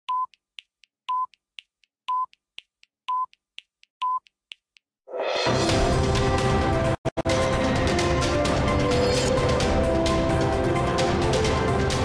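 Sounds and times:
short steady beep: 3.1 - 3.3, 4.0 - 4.2.

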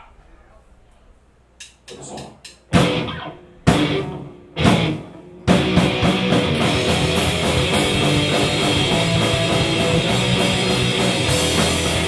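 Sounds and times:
punk band playing: 2.7 - 12.0.

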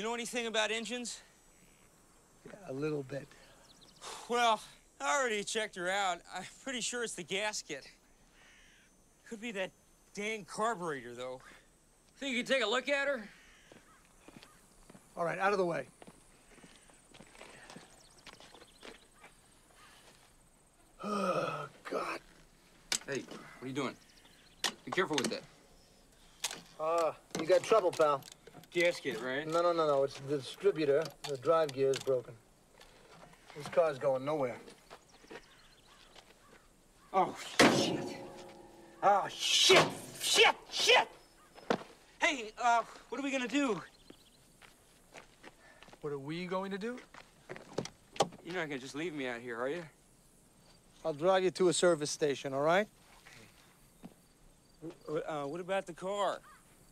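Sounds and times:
footsteps on asphalt: 16.0 - 20.4, 44.0 - 46.1, 47.0 - 48.4.

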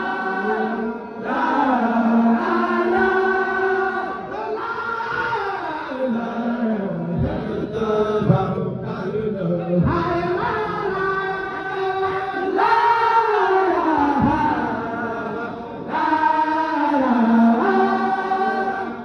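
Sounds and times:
group chanting in long notes: 0.0 - 19.0.

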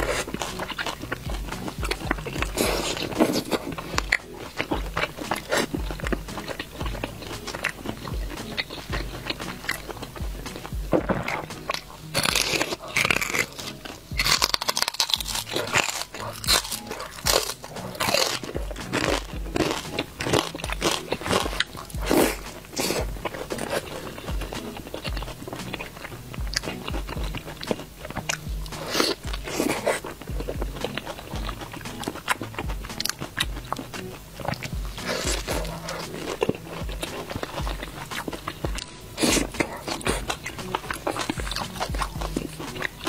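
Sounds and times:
crunchy chewing: 0.0 - 43.0
mouth clicks: 0.0 - 43.0.

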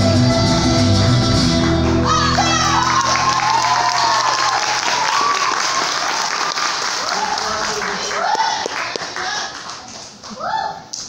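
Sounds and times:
audience applause: 1.5 - 10.4.

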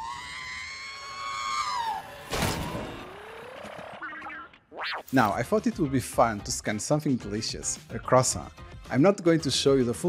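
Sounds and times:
crash-like burst: 2.2 - 3.4.

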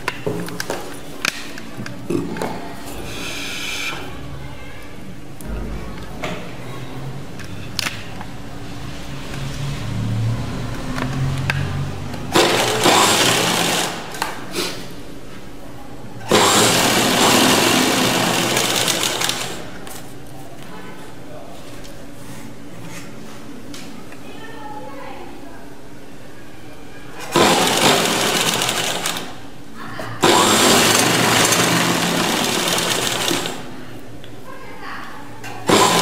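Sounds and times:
sewing machine stitching: 12.3 - 14.1, 16.3 - 19.7, 27.2 - 29.4, 30.2 - 33.7, 35.6 - 36.0.

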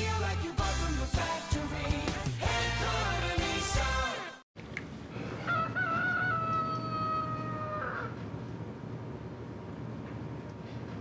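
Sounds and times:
rooster crowing: 5.3 - 8.2.

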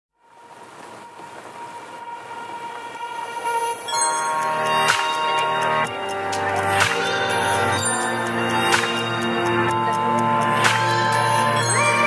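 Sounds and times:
held synth chords: 1.4 - 12.0.

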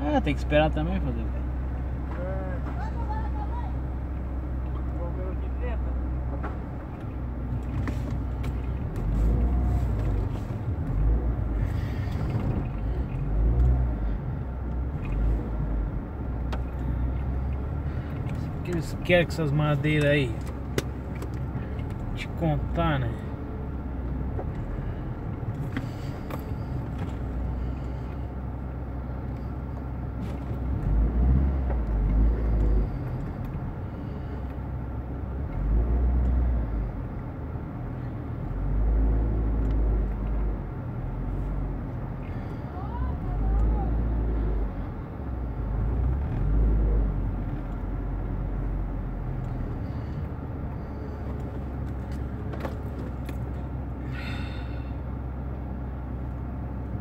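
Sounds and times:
car engine rumbling: 0.0 - 57.0.

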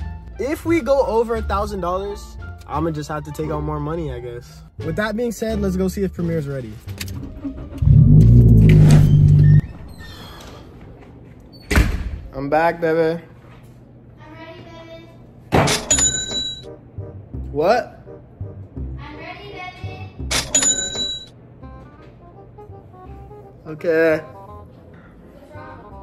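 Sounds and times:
background music: 0.0 - 9.9, 15.8 - 26.0
car engine running: 7.2 - 9.6
cash register ka-ching: 15.7 - 16.7, 20.3 - 21.3.

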